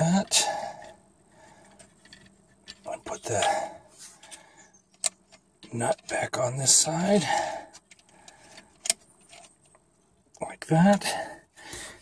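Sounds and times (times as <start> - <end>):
faint metal handling sounds: 0.0 - 7.1, 7.7 - 10.4.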